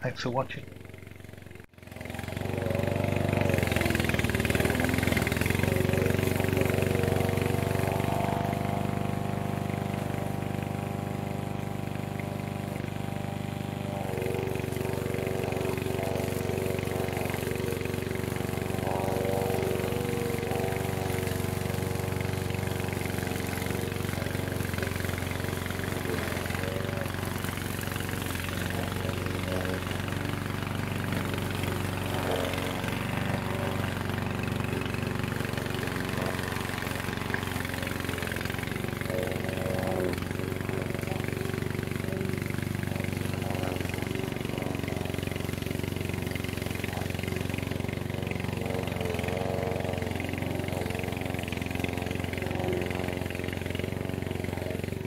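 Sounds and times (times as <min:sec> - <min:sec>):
mower engine running under load: 0:00.0 - 0:55.0.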